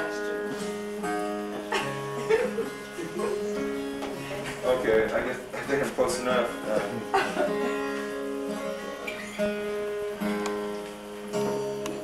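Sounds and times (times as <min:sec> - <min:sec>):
classical guitar being tuned: 0:00.0 - 0:12.0.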